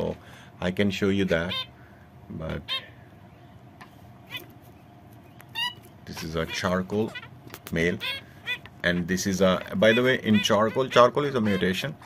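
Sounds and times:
finch short calls: 5.5 - 12.0.

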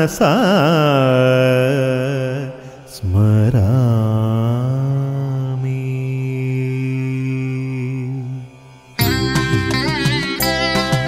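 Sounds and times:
man chanting: 0.0 - 8.8.

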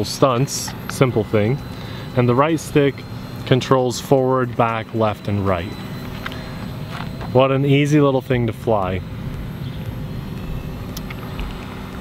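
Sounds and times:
rc helicopter motor whine: 0.0 - 12.0
steady low rumble: 0.0 - 12.0.

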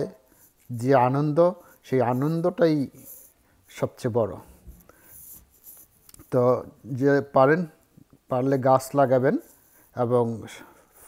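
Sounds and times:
man speaking: 0.0 - 3.1, 3.7 - 4.6, 6.2 - 10.7
faint rustling: 0.3 - 6.6.

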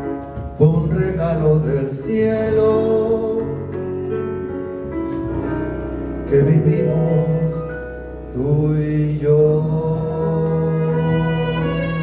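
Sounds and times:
man singing: 0.0 - 3.9, 6.3 - 12.0
orchestral accompaniment: 10.4 - 12.0.

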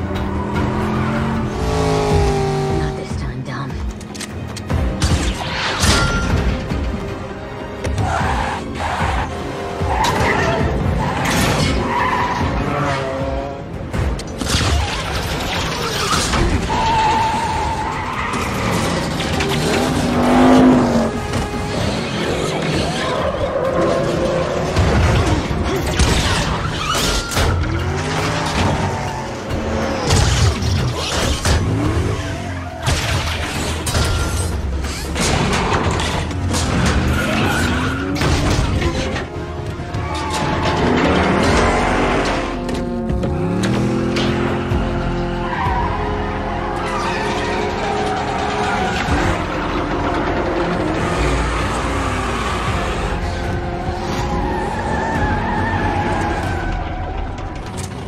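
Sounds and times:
car engines revving: 0.0 - 58.0
film music score: 0.0 - 58.0.

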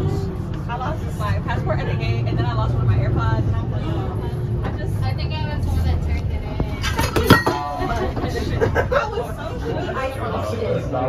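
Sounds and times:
bus engine rumbling: 0.0 - 11.0
passengers chatting: 0.0 - 11.0.

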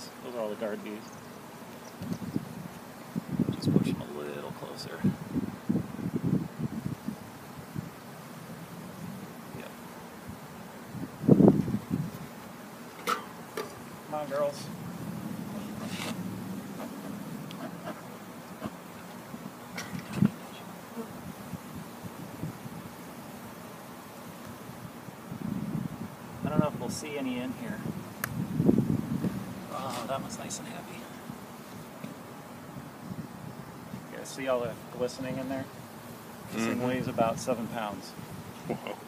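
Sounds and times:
bees buzzing: 0.0 - 39.0
wind buffeting microphone: 2.0 - 4.0, 4.9 - 7.9, 10.3 - 12.3, 24.8 - 27.0, 27.6 - 30.3.

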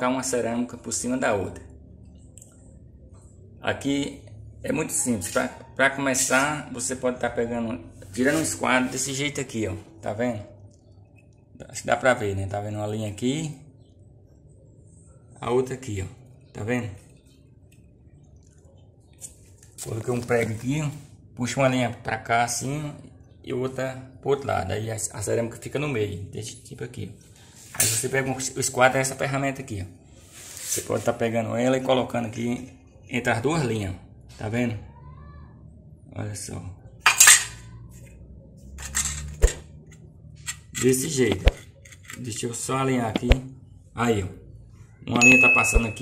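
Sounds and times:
framing square scraping on tile: 38.8 - 39.6.

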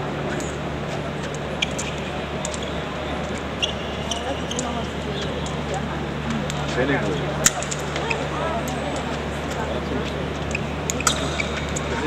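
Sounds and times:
hall hum: 0.0 - 12.0
low voices of spectators: 0.0 - 12.0.

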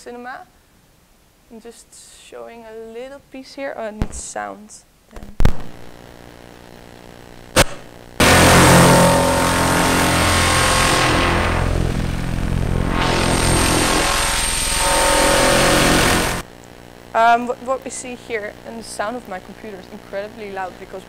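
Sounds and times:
loud film soundtrack from speakers: 7.6 - 16.4.

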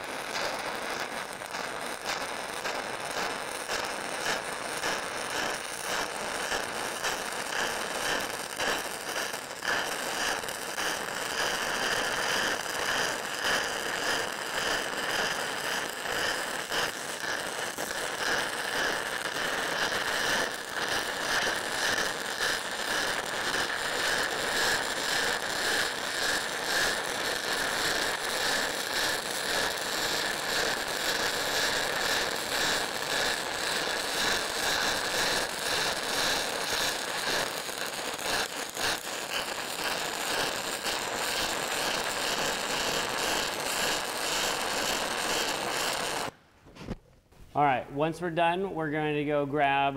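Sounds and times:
welding arc crackling: 0.0 - 46.4.

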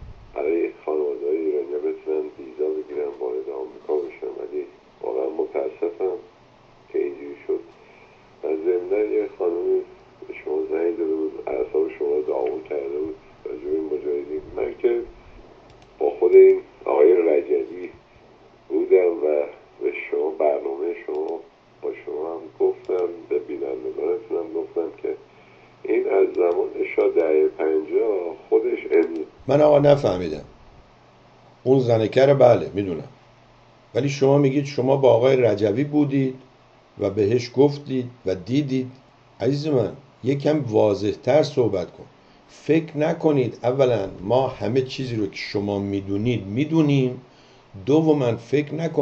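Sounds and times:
person speaking over telephone: 0.4 - 6.3, 6.9 - 7.8, 8.4 - 15.2, 16.0 - 18.0, 18.7 - 25.2, 25.8 - 30.5.

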